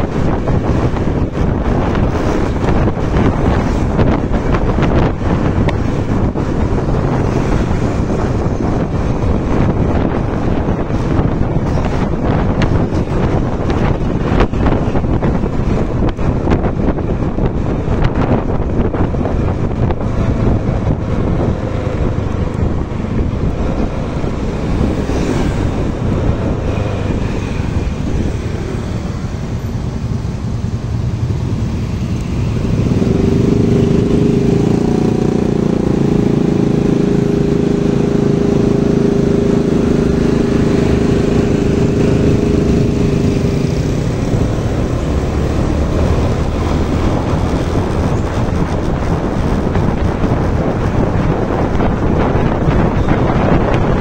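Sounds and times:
road vehicle noise: 0.0s - 54.0s
steady engine drone: 0.0s - 54.0s
wind buffeting microphone: 0.0s - 54.0s.

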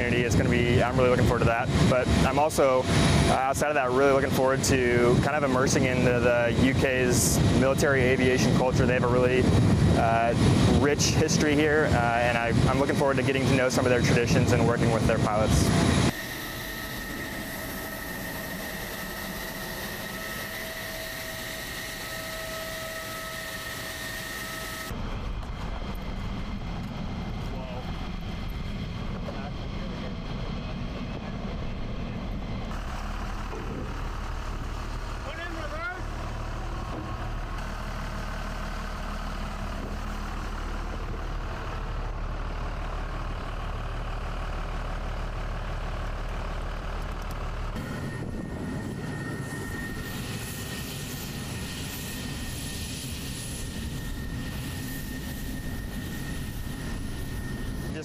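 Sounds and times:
jet whine with high tones: 0.0s - 46.0s, 47.5s - 58.0s
low engine rumble: 0.0s - 58.0s.

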